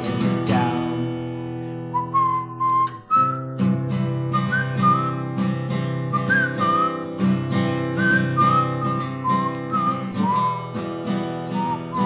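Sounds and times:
strummed acoustic guitar: 0.0s - 12.0s
whistled melody: 1.8s - 12.0s.

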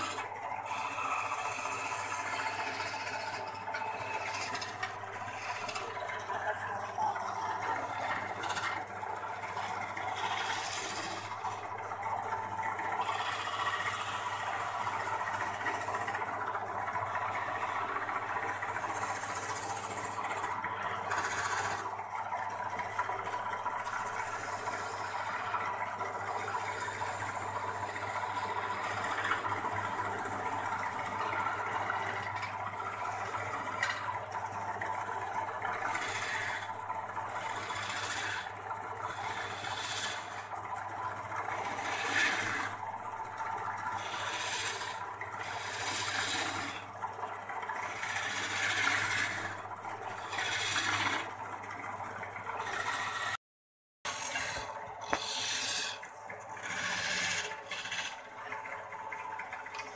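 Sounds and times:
chisel scraping spinning wood: 0.0s - 53.4s, 54.1s - 59.9s
lathe motor hum: 0.0s - 53.4s, 54.1s - 59.9s.

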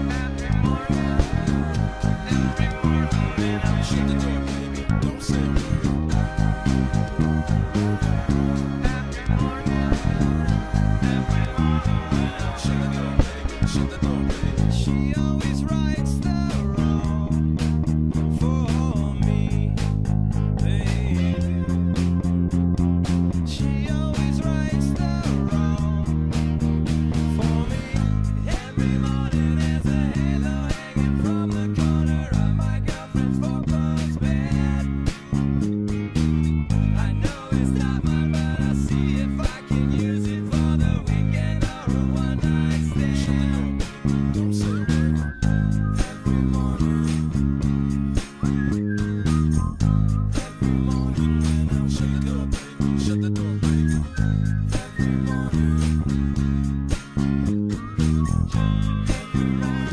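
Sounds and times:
electric bass line: 0.0s - 59.9s
pop-rock band with guitars: 0.0s - 59.9s.

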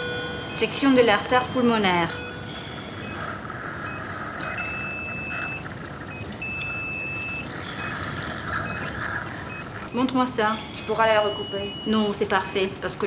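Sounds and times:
patient monitor beeping: 0.0s - 13.0s.

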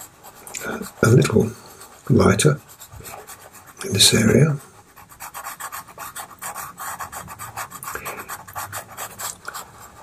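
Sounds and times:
pastel pencil scratching on paper: 0.0s - 10.0s.

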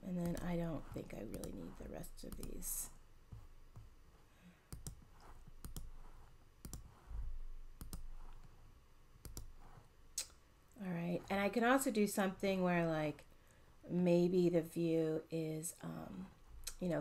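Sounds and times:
computer mouse clicks: 0.2s - 2.7s, 4.7s - 7.0s, 7.8s - 8.6s, 9.2s - 9.6s.

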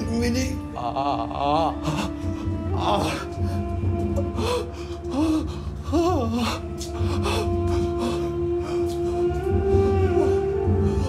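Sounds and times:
droning music score: 0.0s - 11.0s
man wailing: 0.7s - 3.3s.

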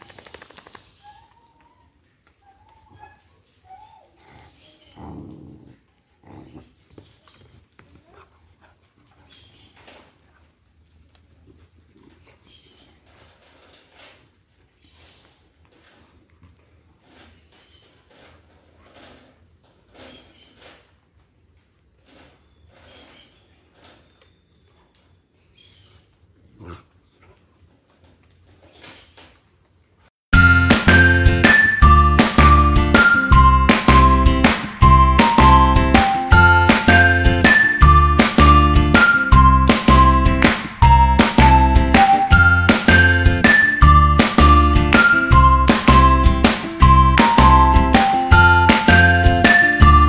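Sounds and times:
puppies play-fighting: 0.0s - 25.3s
dogs growling and whining: 0.9s - 7.0s, 26.4s - 27.4s.

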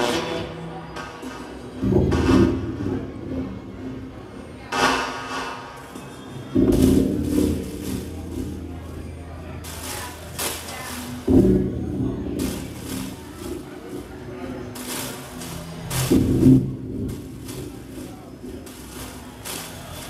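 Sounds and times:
bursts of hissing noise: 6.7s - 11.6s, 12.3s - 20.0s.

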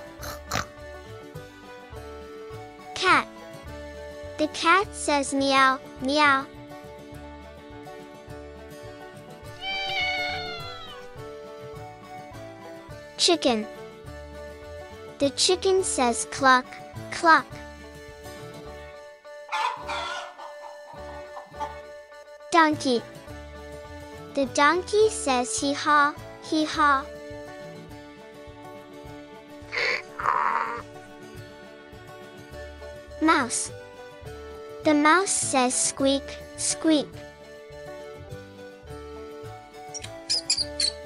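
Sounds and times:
soft background music: 0.0s - 41.0s
mouse squeaking: 9.6s - 11.2s, 39.9s - 41.0s
rooster crowing: 9.6s - 11.2s, 19.5s - 20.7s.

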